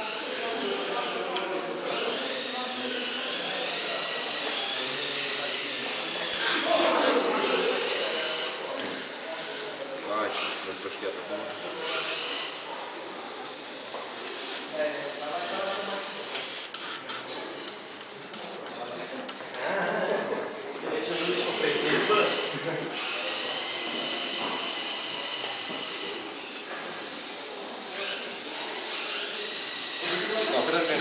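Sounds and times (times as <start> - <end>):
indistinct background talk: 0.0 - 31.0.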